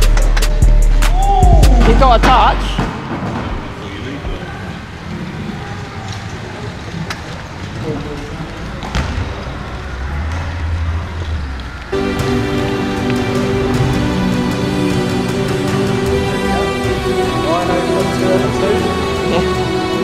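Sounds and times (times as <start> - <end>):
background music: 0.0 - 3.3, 11.9 - 20.0
faint voices: 1.2 - 12.0.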